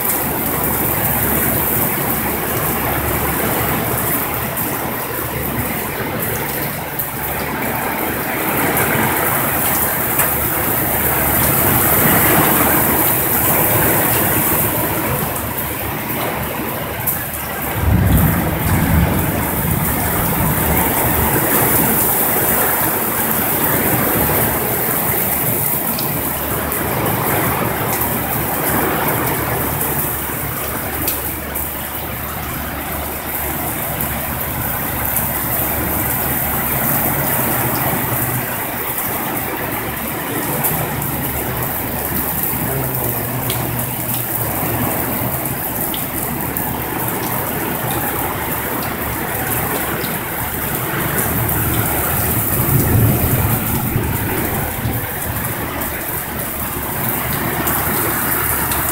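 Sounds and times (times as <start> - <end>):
heavy rain on road and roof: 0.0 - 58.9.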